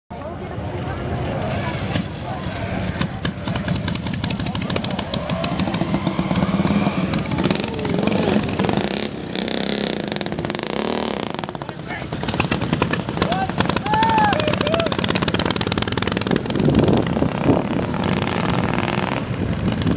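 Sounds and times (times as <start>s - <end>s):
people talking: 0.1s - 9.4s, 11.1s - 17.0s
motorcycle engine exhaust beats: 1.7s - 19.9s.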